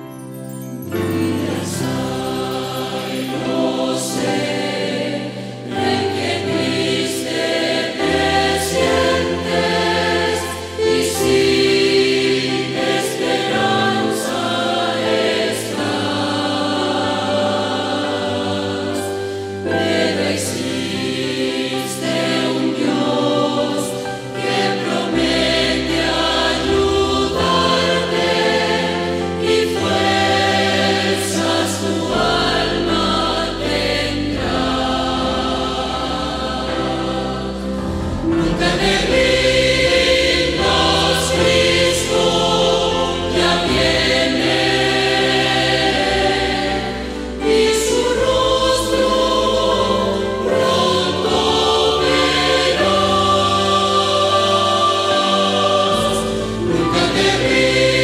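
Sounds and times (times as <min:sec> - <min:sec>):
choir singing: 0:00.0 - 0:58.0.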